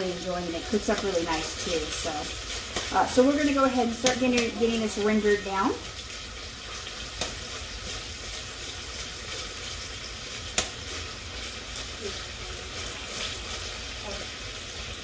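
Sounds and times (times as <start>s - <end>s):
bacon sizzling in oil: 0.0s - 15.0s.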